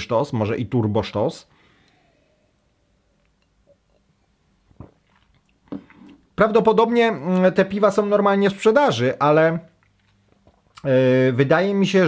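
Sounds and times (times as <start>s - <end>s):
faint mouth and breath sounds: 1.5s - 6.4s
man sipping and swallowing: 3.1s - 6.4s.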